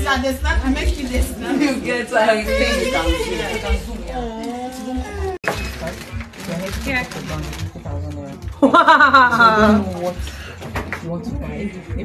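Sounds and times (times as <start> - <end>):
voices: 0.0 - 5.4
background music: 0.0 - 12.0.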